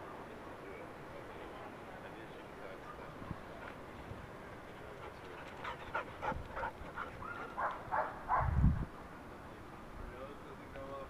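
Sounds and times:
dog barking: 7.2 - 8.6.

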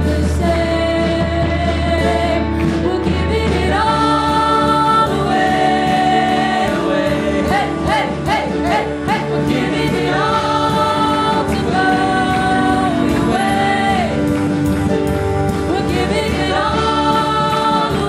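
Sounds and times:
woman singing: 0.0 - 14.4, 15.6 - 18.0
acoustic guitar: 0.0 - 18.0
electric guitar: 0.0 - 18.0
keyboard: 0.0 - 18.0.

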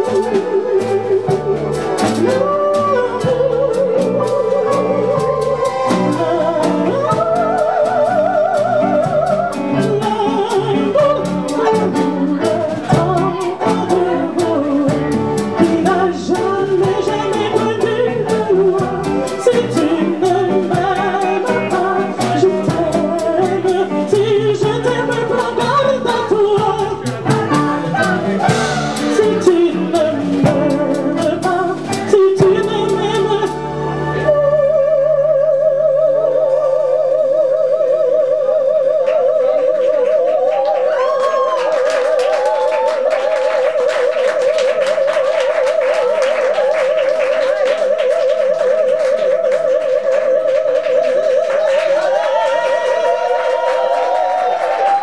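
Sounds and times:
instrumental accompaniment: 0.0 - 55.0
person singing with vibrato: 0.0 - 55.0.

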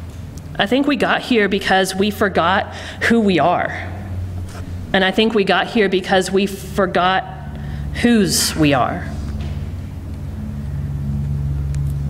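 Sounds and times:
low hum of deep tones: 0.0 - 12.0.

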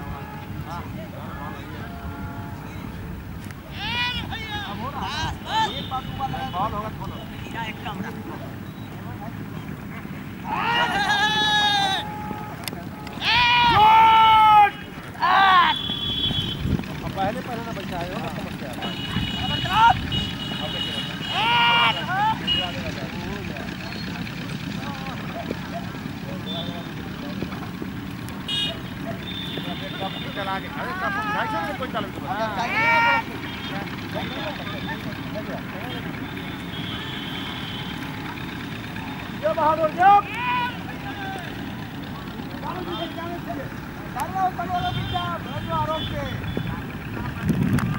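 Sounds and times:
chatter of voices: 0.0 - 47.9
distant people talking and calling: 0.0 - 47.9
low rumble of traffic: 0.0 - 47.9
loud long shout: 3.7 - 6.5, 10.4 - 16.5, 19.2 - 22.6, 30.7 - 35.0, 39.0 - 41.8.

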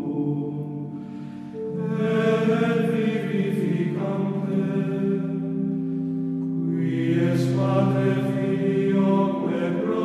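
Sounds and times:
slow choral chant: 0.0 - 10.0.

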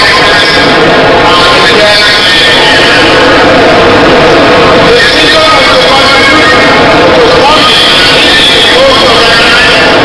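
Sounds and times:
man speaking over public address: 0.0 - 3.4, 4.6 - 10.0
loud distorted noise: 0.0 - 10.0.

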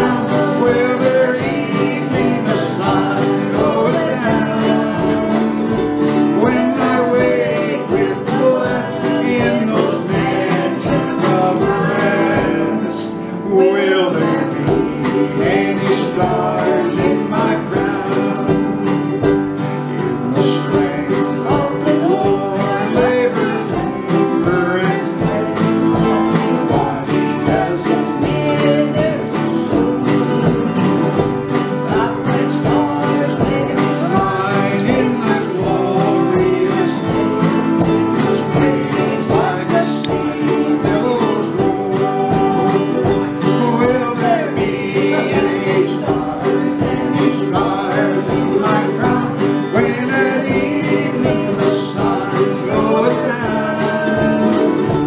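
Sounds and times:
acoustic guitars strumming: 0.0 - 55.0
ukulele strumming: 0.0 - 55.0
voices singing: 0.0 - 55.0.

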